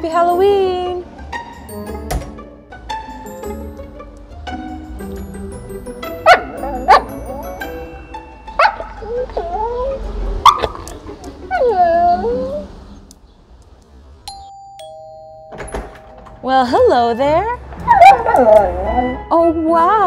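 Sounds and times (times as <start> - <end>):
soft background music: 0.0 - 13.1, 14.3 - 20.0
two-note doorbell chime: 5.8 - 8.9, 14.3 - 17.5
dog whining vocalizations: 8.6 - 13.0, 17.1 - 19.2.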